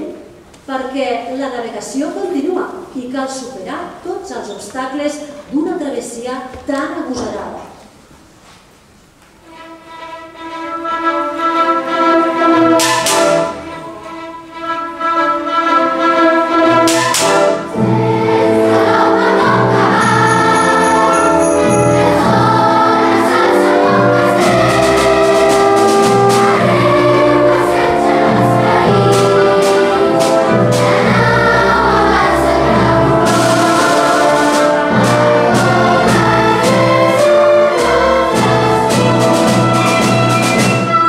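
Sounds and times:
orchestra playing: 9.4s - 41.0s
children's choir singing: 9.8s - 41.0s
percussion crashes: 16.8s - 26.8s.

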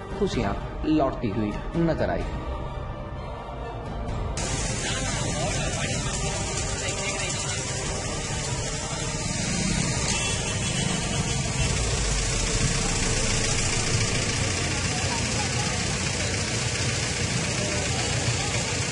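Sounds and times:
indistinct voices: 4.4s - 18.9s
vehicle engine running: 4.4s - 18.9s.

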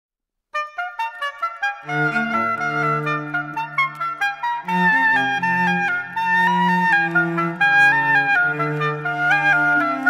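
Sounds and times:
oboe playing short detached notes: 0.6s - 10.0s.

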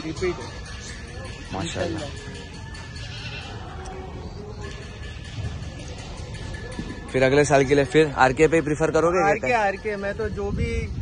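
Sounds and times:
goat bleating: 3.1s - 3.7s.

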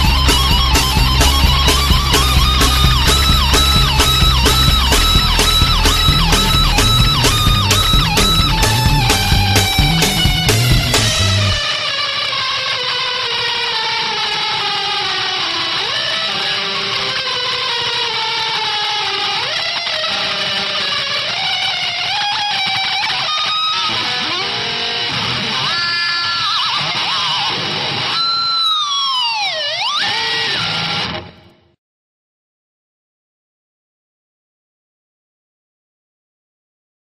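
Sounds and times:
electric guitar bending notes: 0.0s - 31.8s.

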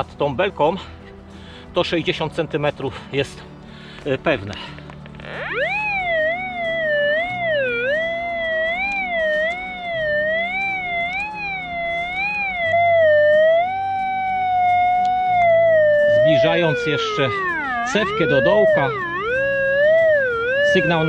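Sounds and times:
metal detector target tone: 5.2s - 21.0s.

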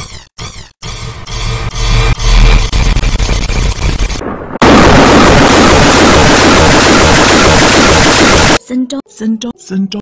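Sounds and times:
distorted noise: 1.5s - 8.6s
loud crackling rumble: 2.9s - 7.9s.

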